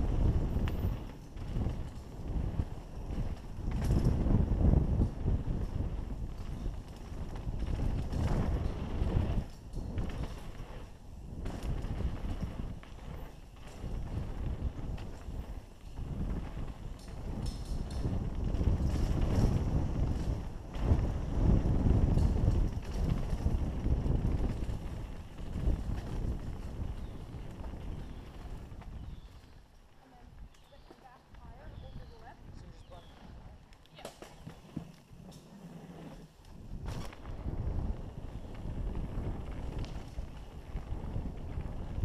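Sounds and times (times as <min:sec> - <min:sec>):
wind rushing over microphone: 0:00.0 - 0:33.7, 0:34.4 - 0:42.0
bike tyres rumbling on dirt: 0:00.0 - 0:42.0
bike knocks and rattles: 0:00.1 - 0:29.3, 0:34.0 - 0:42.0.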